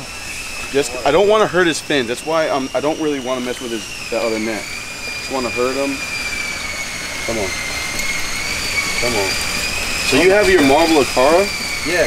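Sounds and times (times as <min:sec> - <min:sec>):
high-pitched mechanical whine: 0:00.0 - 0:12.0.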